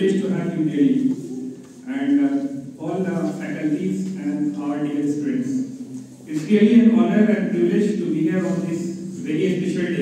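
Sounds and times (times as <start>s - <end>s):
man speaking into a microphone: 0.0s - 1.2s, 1.8s - 10.0s.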